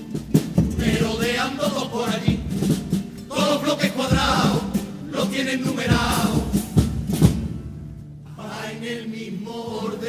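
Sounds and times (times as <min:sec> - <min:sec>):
bass drum beats: 0:00.0 - 0:08.0
guitar: 0:00.0 - 0:10.0
male chorus singing in unison: 0:00.6 - 0:06.8, 0:08.3 - 0:10.0.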